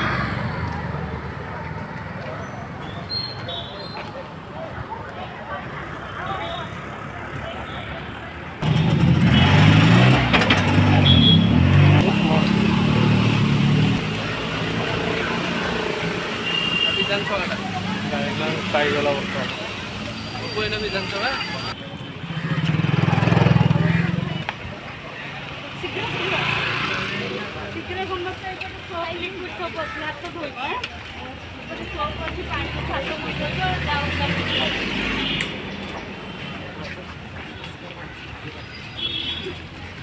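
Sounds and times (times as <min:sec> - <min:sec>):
people's voices: 0:00.0 - 0:08.6, 0:10.0 - 0:40.0
vehicle engine rumble: 0:00.0 - 0:16.4
street noise: 0:00.0 - 0:40.0
voices in background: 0:00.5 - 0:08.6
motorcycle passing by: 0:05.9 - 0:16.4, 0:22.2 - 0:24.4, 0:25.8 - 0:27.7.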